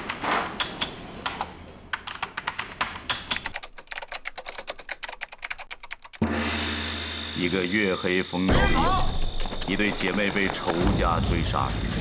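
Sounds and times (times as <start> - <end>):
computer keyboard typing: 1.9 - 6.2.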